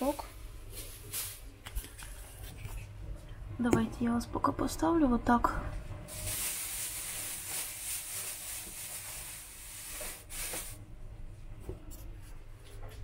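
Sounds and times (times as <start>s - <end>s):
plastic bag rustling and crinkling: 0.1s - 2.7s, 6.1s - 10.8s.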